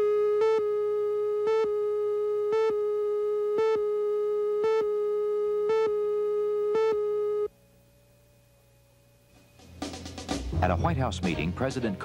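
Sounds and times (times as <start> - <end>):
buzzy line-up tone: 0.0 - 7.5.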